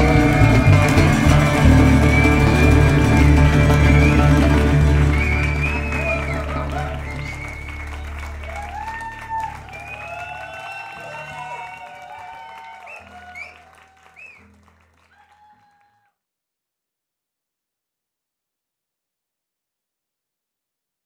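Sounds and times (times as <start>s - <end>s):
audience applauding and cheering: 0.0s - 16.1s.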